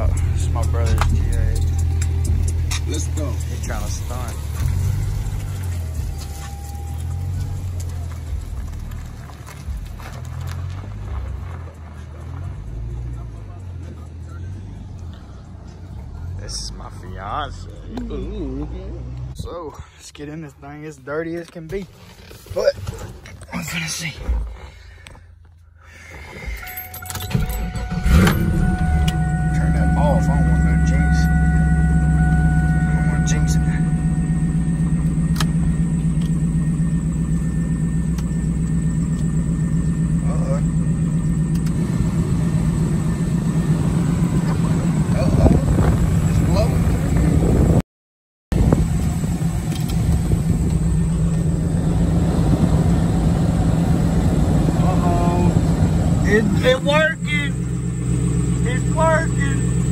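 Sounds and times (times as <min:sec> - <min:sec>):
car engine starting and idling: 0:00.0 - 0:47.8, 0:48.5 - 0:59.9
thin steady high tones: 0:26.6 - 0:41.5.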